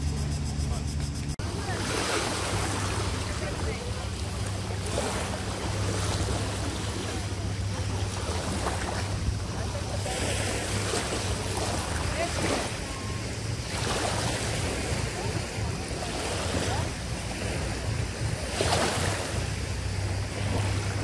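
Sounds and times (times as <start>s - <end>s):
low hum: 0.0s - 21.0s
small waves on pebbles: 1.4s - 21.0s.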